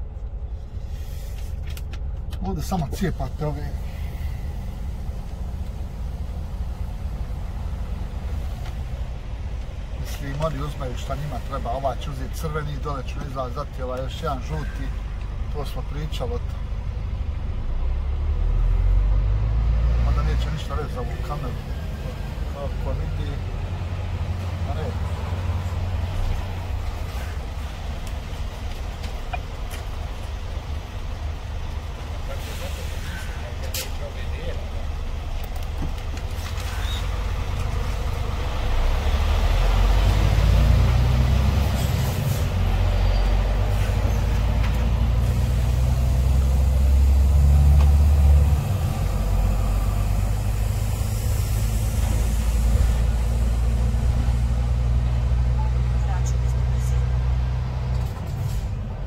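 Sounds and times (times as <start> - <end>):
truck diesel engine accelerating: 0.0 - 59.0.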